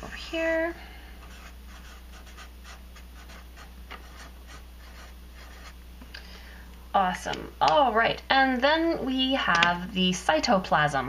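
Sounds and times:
steady low hum: 0.0 - 11.0
marker pen scratching on paper: 1.2 - 5.8.

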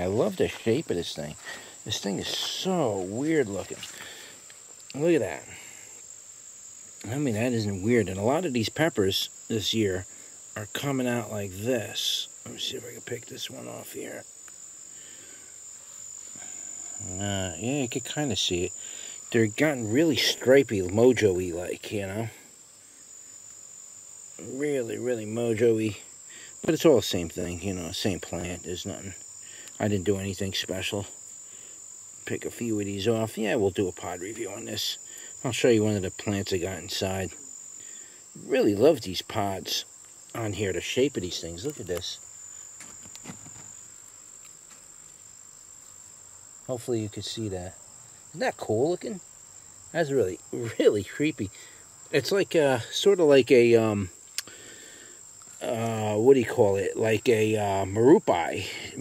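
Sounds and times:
crickets trilling: 0.0 - 59.0.

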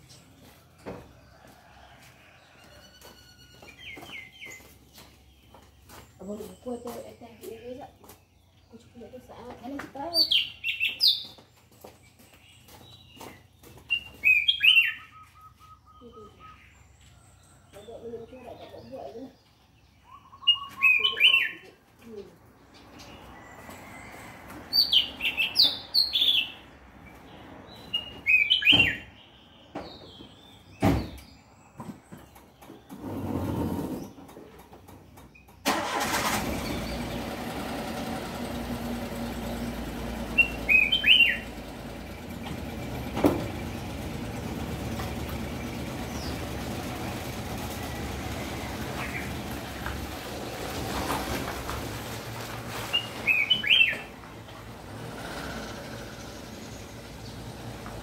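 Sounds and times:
songbird chirping: 0.0 - 58.0
vehicle engine running: 35.7 - 58.0.

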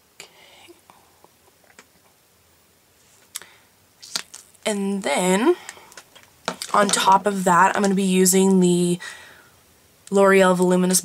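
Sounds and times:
faint whispering: 0.2 - 1.2.

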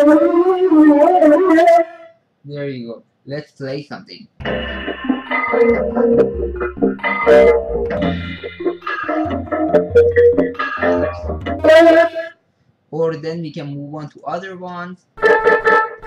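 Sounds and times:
deep synth bass line: 4.4 - 12.0
layered synth chords: 4.4 - 12.3.

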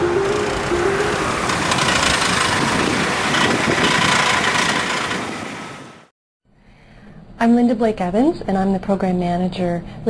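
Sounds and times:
vehicle engine running: 0.0 - 6.1.

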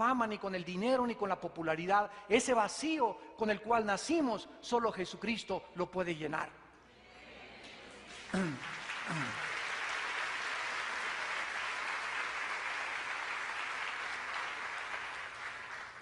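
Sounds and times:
audience applauding: 7.9 - 16.0.

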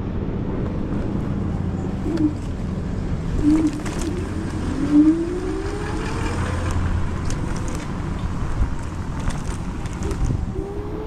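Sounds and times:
tyres and wind rumbling: 0.0 - 11.0.

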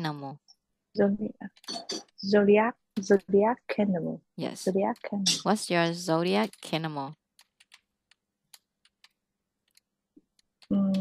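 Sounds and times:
keyboard and mouse clicks: 1.5 - 2.3, 3.0 - 3.4, 4.7 - 11.0.

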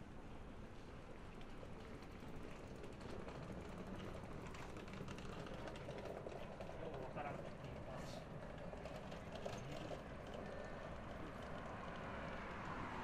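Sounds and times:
quiet city street ambience: 0.0 - 13.0.

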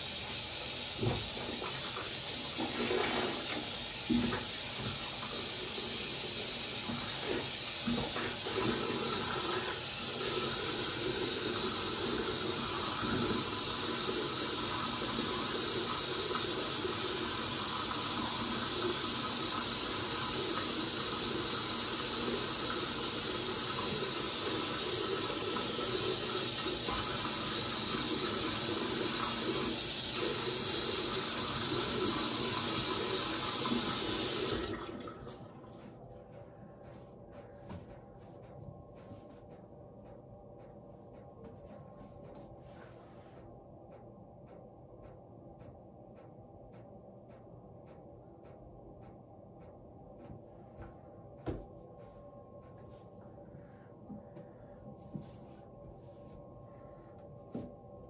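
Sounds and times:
bathroom tap running: 0.0 - 35.9.

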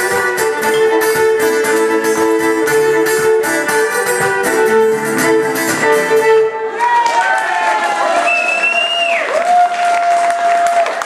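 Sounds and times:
fiddle and guitar folk tune: 0.0 - 6.8
audience applauding: 6.7 - 11.0
drawn-out cheers: 6.7 - 11.0.

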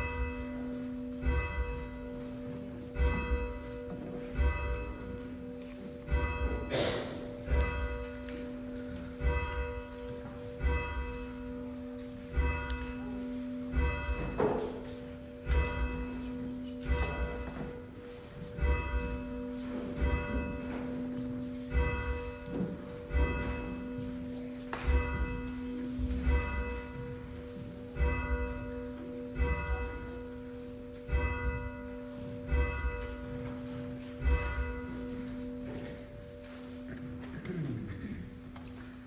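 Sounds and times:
church bell tolling: 0.0 - 39.0.

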